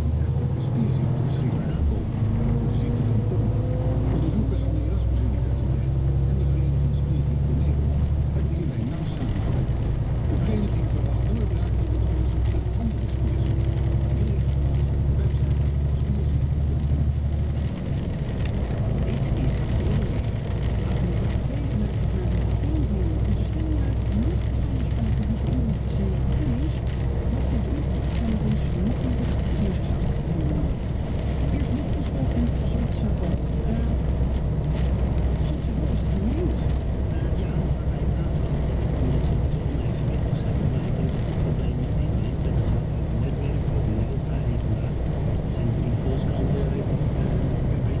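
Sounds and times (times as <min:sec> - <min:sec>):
road noise inside cab: 0:00.0 - 0:48.0
truck engine drone: 0:00.0 - 0:48.0.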